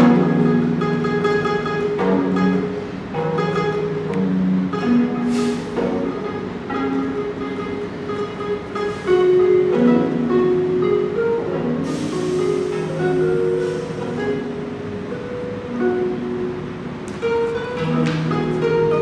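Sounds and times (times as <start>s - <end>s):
zither plucked: 0.0s - 19.0s.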